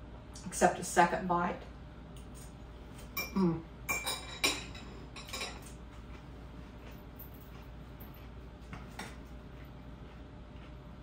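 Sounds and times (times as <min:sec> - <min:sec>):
cutlery clinking on glass dishes: 0:03.2 - 0:05.8.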